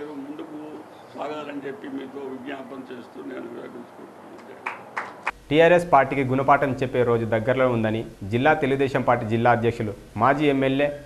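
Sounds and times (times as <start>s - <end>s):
man talking: 0.0s - 4.7s, 5.5s - 11.0s.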